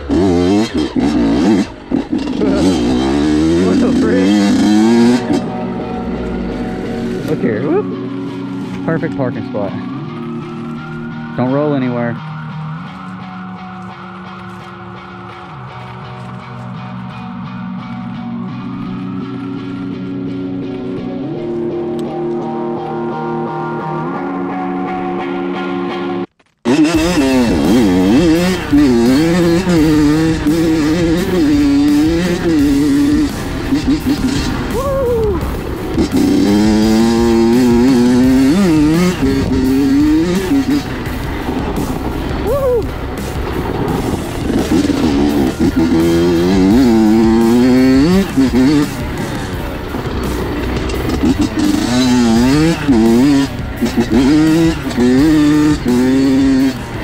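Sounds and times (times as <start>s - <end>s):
two-stroke motorcycle engine revving: 0.0s - 14.6s, 26.6s - 57.0s
guitar-led backing music: 0.0s - 57.0s.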